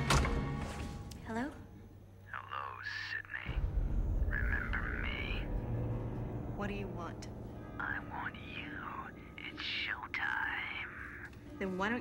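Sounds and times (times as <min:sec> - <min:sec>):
person whispering over telephone: 0:02.2 - 0:03.6, 0:07.8 - 0:11.3.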